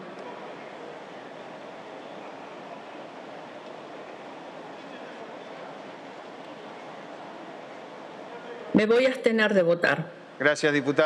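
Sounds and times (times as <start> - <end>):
faint indistinct voices: 0.0 - 8.9
open microphone background noise: 0.0 - 11.0.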